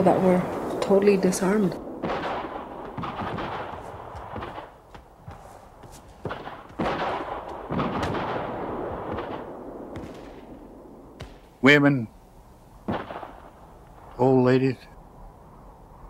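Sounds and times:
gunshots with rolling echo: 0:00.0 - 0:14.7.

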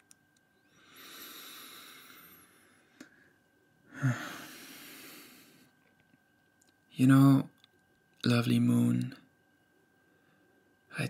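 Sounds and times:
man breathing out: 0:00.7 - 0:03.1, 0:03.9 - 0:05.7.

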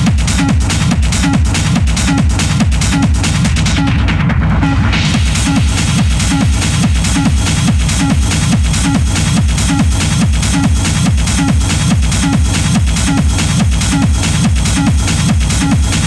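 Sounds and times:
busy hi-hats: 0:00.0 - 0:04.3, 0:04.9 - 0:16.0
techno kick drum beat: 0:00.0 - 0:16.0.

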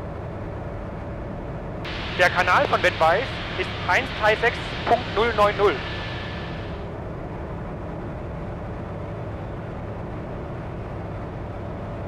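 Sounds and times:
light aircraft engine and propeller drone: 0:00.0 - 0:12.0.

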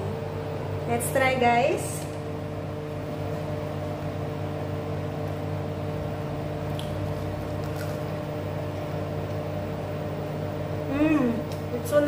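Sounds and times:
electric appliance motor hum: 0:00.0 - 0:12.0.

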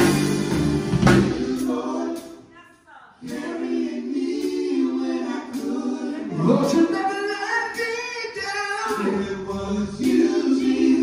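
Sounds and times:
group singing gospel song: 0:00.0 - 0:02.5, 0:03.2 - 0:11.0.

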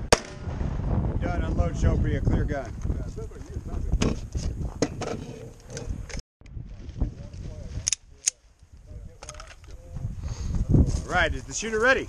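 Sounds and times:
rifle metallic clicks and clatter: 0:07.8 - 0:08.4, 0:09.2 - 0:09.7.

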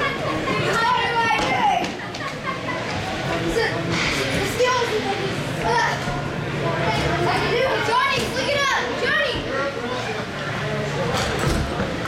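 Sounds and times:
crowd voices and shouts: 0:00.0 - 0:12.0.

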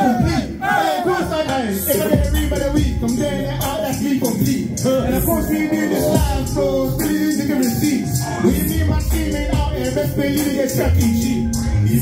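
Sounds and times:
shouted rap vocals through a microphone: 0:00.0 - 0:12.0.

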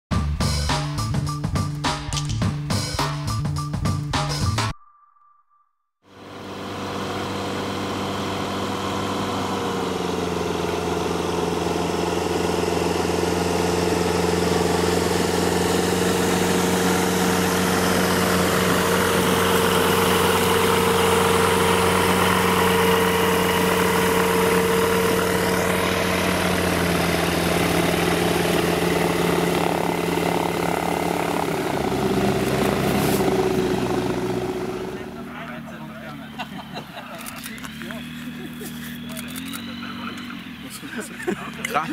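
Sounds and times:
light aircraft engine drone: 0:06.1 - 0:41.9.

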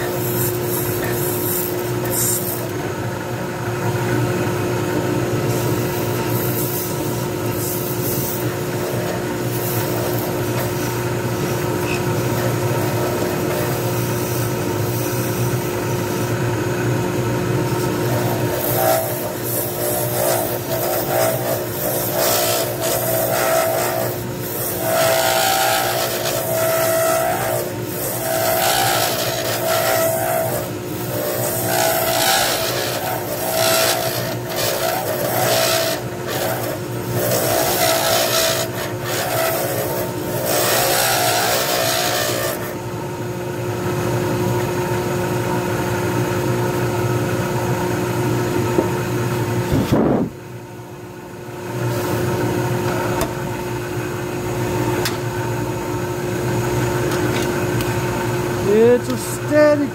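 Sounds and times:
turning tool cutting wood: 0:00.0 - 0:02.8, 0:05.5 - 0:14.2, 0:17.8 - 0:42.8, 0:58.6 - 0:59.9
wood lathe humming: 0:05.4 - 0:15.7, 0:17.6 - 0:42.8, 0:56.5 - 0:59.9.

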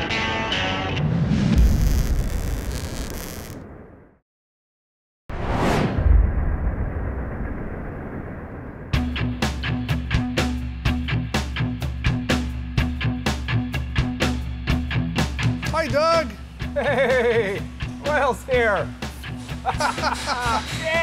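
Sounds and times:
falling swoosh: 0:05.3 - 0:09.0
low hit: 0:05.3 - 0:09.3
deep boom: 0:05.3 - 0:09.6
music with steady drum beat: 0:09.1 - 0:21.0.

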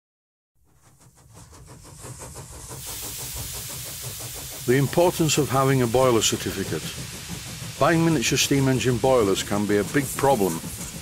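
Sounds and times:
steam engine exhaust beats: 0:00.6 - 0:11.0
steam hissing: 0:00.7 - 0:11.0.

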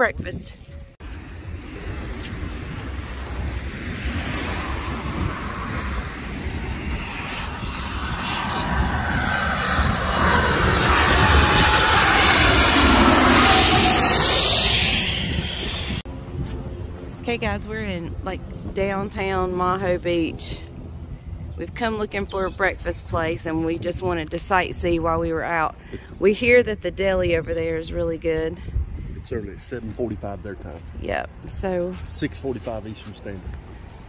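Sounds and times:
jet aircraft flying overhead: 0:01.0 - 0:34.0.

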